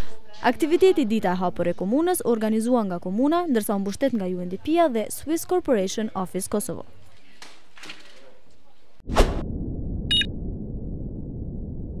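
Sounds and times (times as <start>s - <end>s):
low rumble: 9.1s - 12.0s
high electronic blip: 10.1s - 10.3s.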